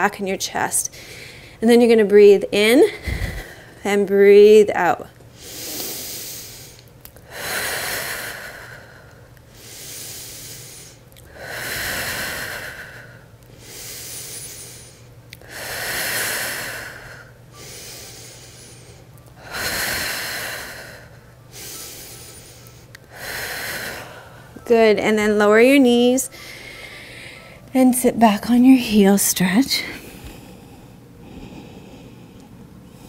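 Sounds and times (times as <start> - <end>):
woman breathing deeply: 0.9 - 1.6, 2.9 - 3.8, 5.3 - 24.6, 26.3 - 27.7, 29.8 - 33.0.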